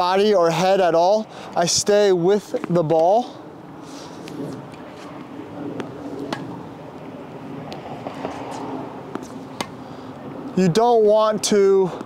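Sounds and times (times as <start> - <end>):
steady low hum: 0.0 - 12.0
tennis balls hit and bouncing: 2.4 - 3.2, 4.2 - 9.8.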